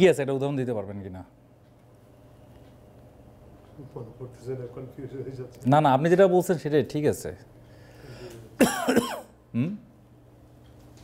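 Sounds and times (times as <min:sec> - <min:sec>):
person clearing throat: 0:08.6 - 0:09.9.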